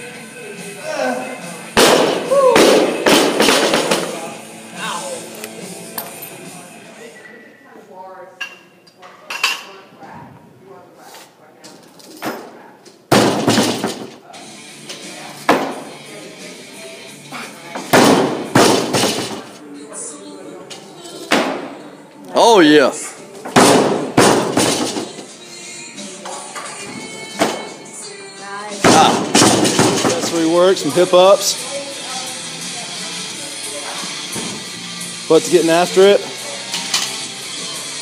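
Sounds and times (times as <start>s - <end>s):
background music: 0.0s - 7.3s, 13.1s - 38.0s.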